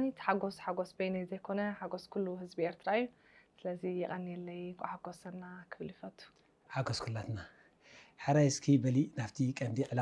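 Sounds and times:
woman talking: 0.0s - 6.4s.

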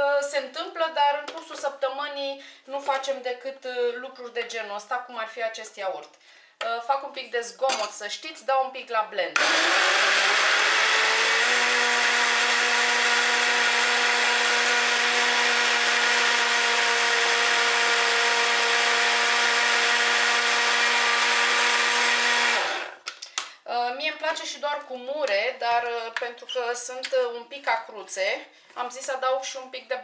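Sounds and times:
blender motor whine: 9.4s - 23.0s.

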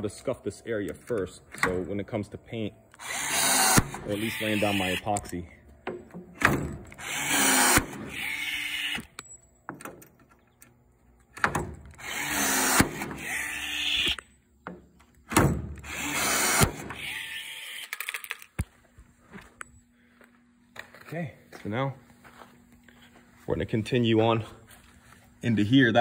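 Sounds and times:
rivet tool motor running: 3.0s - 5.1s, 6.8s - 9.1s, 11.9s - 14.0s, 15.8s - 18.0s.

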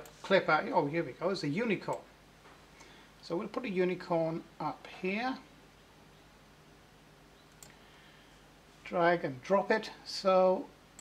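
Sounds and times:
computer mouse click: 7.5s - 7.8s.

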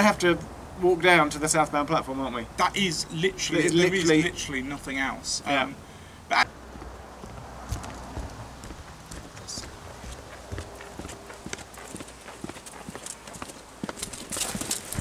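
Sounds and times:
footsteps on asphalt: 6.4s - 15.0s.

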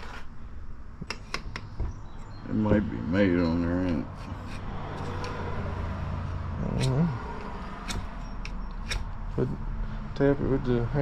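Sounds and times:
sharp handling clicks: 6.7s - 9.2s
metal pulley thump on wood: 7.8s - 9.1s.

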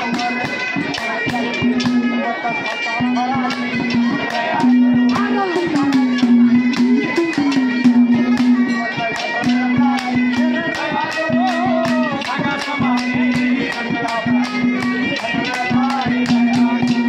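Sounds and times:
hand percussion: 0.0s - 17.0s
harmonium: 0.0s - 17.0s
singer holding gliding notes: 0.0s - 17.0s
clay pot drum: 3.0s - 17.0s.

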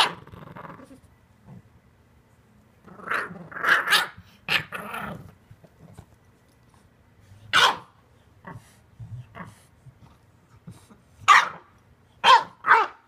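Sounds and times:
puppy growling: 0.0s - 1.8s, 2.8s - 6.1s
puppy barking: 3.7s - 4.7s, 7.5s - 8.0s, 11.2s - 13.0s.

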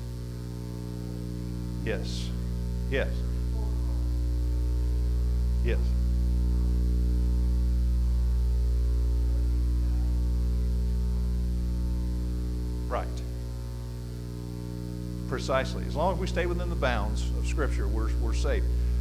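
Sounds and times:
electrical mains hum: 0.0s - 19.0s
man saying yes: 1.8s - 3.8s, 5.6s - 6.0s.

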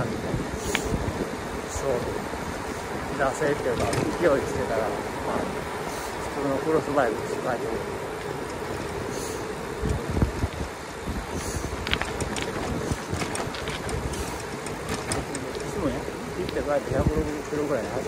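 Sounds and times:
low bumps: 0.0s - 18.0s
tyre noise on rough asphalt: 0.0s - 18.0s
wind rushing over microphone: 0.0s - 18.0s
light clicks and rattles: 3.3s - 4.8s, 11.3s - 18.0s.

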